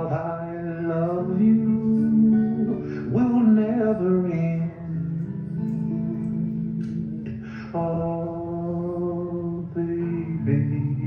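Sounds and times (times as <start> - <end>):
man singing long notes: 0.0 - 6.3, 7.4 - 11.0
acoustic guitar: 0.0 - 11.0.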